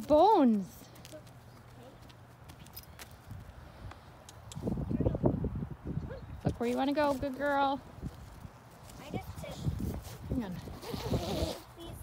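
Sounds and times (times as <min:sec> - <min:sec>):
hooves thudding on dirt: 0:00.0 - 0:04.7.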